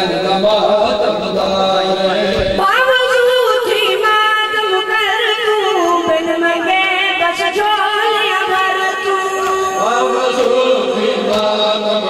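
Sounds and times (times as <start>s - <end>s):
boy chanting through microphone: 0.0s - 12.0s.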